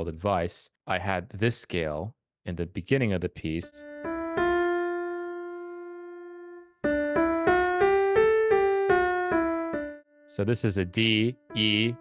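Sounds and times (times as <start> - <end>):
piano note ringing: 3.6 - 12.0
piano scale up and down: 3.6 - 12.0.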